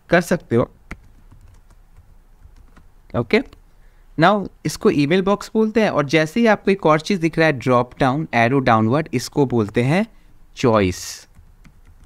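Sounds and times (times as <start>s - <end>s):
faint keyboard typing: 0.8s - 3.7s, 11.2s - 12.0s.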